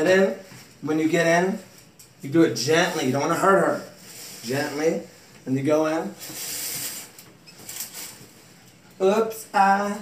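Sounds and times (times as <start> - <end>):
shower curtain rustling: 0.0 - 10.0.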